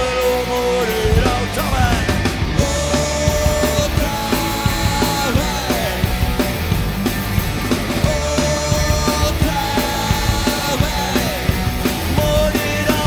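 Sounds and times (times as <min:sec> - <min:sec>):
man singing: 0:00.0 - 0:06.3, 0:08.0 - 0:13.0
bass guitar: 0:00.0 - 0:13.0
distorted electric guitars: 0:00.0 - 0:13.0
drum kit beat: 0:00.0 - 0:13.0.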